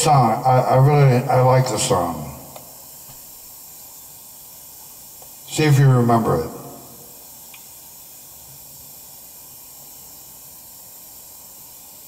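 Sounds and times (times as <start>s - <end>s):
man's voice: 0.0s - 2.5s, 5.5s - 7.0s
microphone line hiss: 0.0s - 12.0s.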